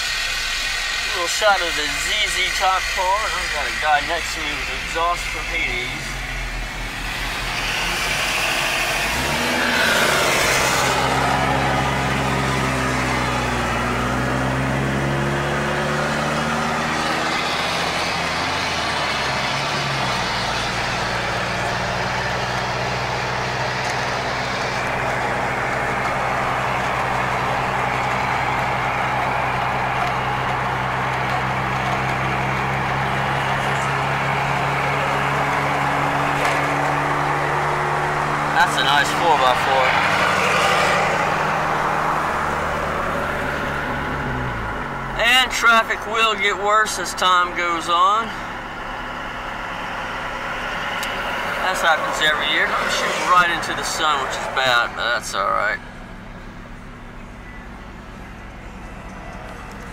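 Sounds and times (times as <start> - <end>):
car engine and road noise: 0.0 - 59.9.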